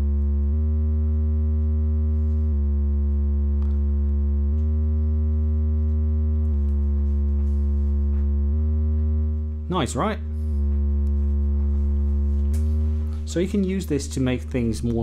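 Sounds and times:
sustained low synth tone: 0.0s - 15.0s.

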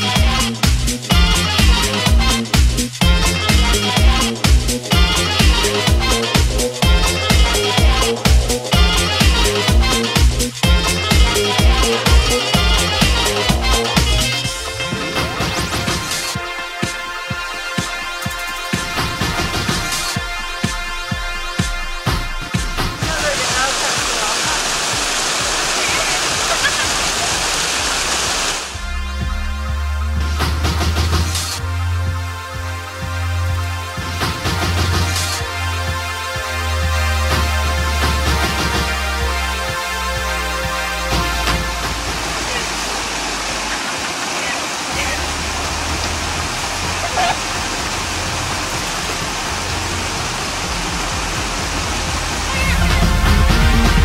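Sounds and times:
waterfall rushing: 0.0s - 20.8s, 22.1s - 28.9s, 33.7s - 54.0s
music with low bass: 0.0s - 26.0s, 28.6s - 43.7s, 44.9s - 54.0s
water pouring over rocks: 23.0s - 28.8s, 41.2s - 54.0s.

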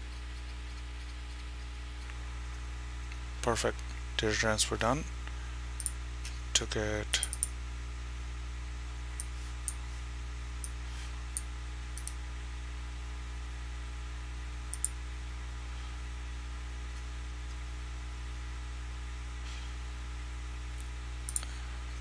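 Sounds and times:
steady low hum: 0.0s - 22.0s
computer mouse clicks: 7.2s - 7.5s, 12.0s - 12.2s, 14.7s - 15.0s.

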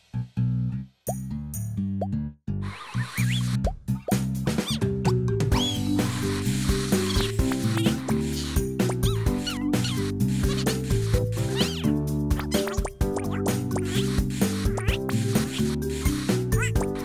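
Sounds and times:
cheerful cartoon music: 0.2s - 17.0s
high squeaky vocal sounds: 4.6s - 4.8s, 8.3s - 10.8s, 11.4s - 14.0s, 16.5s - 17.0s.

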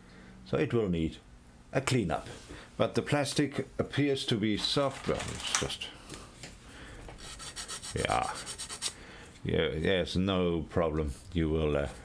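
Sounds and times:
sanding stick rubbing plastic: 7.2s - 9.0s.

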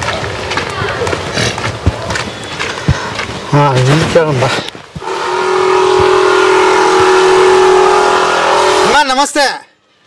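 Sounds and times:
footsteps on gravel: 0.0s - 5.2s.

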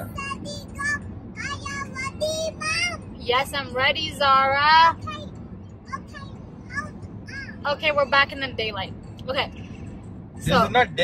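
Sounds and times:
road noise inside car: 0.0s - 11.0s.

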